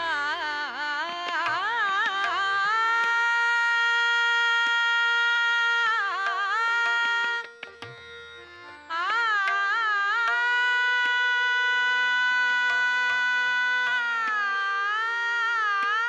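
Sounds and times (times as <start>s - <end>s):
tabla strokes: 0.0s - 16.0s.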